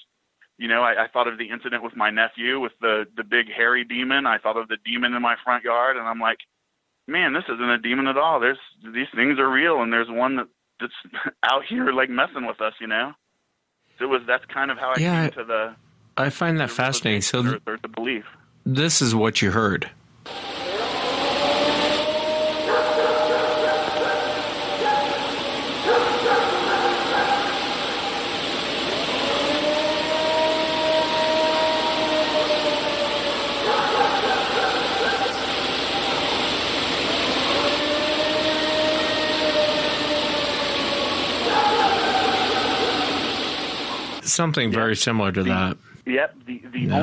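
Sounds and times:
higher wavering calls: 20.3s - 44.2s
long drawn-out howls: 20.3s - 44.2s
steady hiss: 20.3s - 45.7s.

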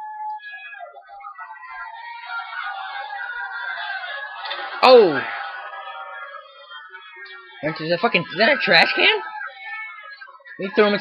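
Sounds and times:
arena crowd noise from speaker: 0.0s - 11.0s.

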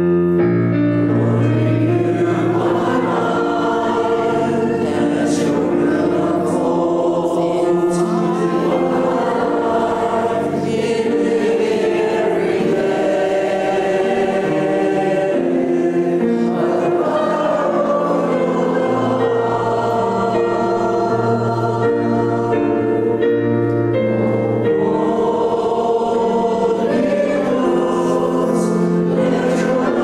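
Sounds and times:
keyboard accompaniment: 0.0s - 30.0s
congregation singing: 0.8s - 30.0s.

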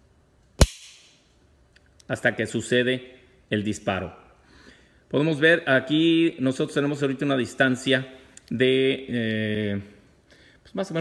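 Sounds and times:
pistol dry-fire click: 0.6s - 1.2s.

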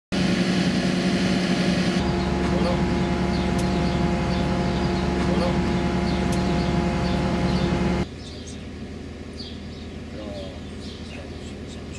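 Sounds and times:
diesel engine humming: 0.1s - 11.9s.

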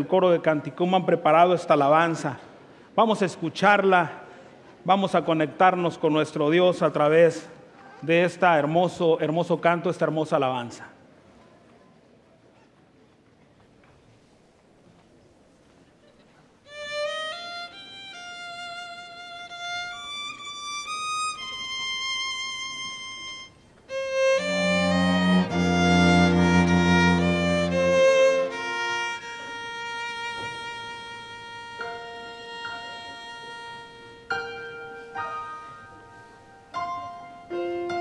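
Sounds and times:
violin playing slow hymn: 16.7s - 34.4s
low accompaniment: 23.4s - 30.8s.

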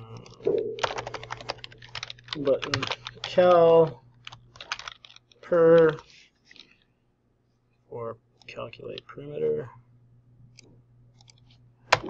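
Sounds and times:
typing on computer keyboard: 0.2s - 3.4s, 4.2s - 5.9s.

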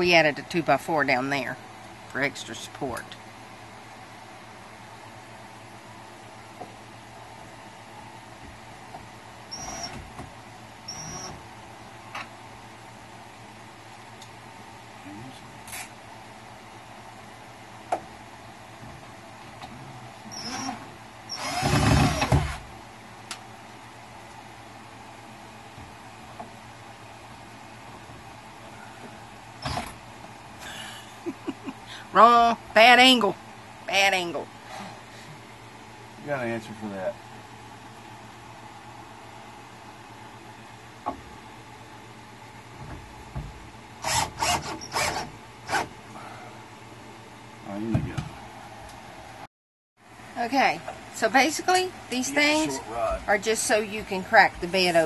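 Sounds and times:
cordless drill driving a screw: 20.3s - 22.5s, 44.0s - 45.8s
cordless drill driving screw: 44.0s - 45.8s.

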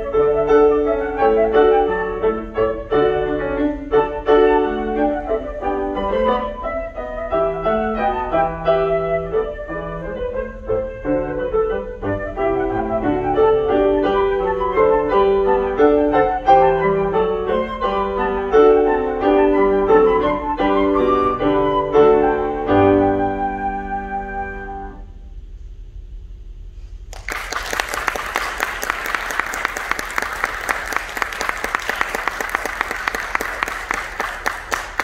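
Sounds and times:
flute melody: 0.0s - 25.2s
grand piano: 0.0s - 25.5s, 27.0s - 35.0s.

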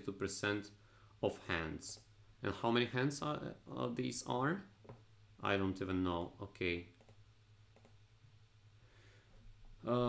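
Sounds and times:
computer mouse clicks: 6.9s - 8.0s.

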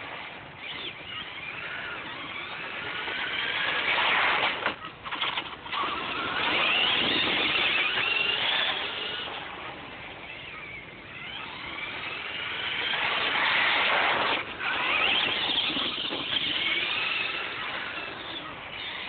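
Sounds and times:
toy truck electric motor whining: 0.1s - 19.0s.

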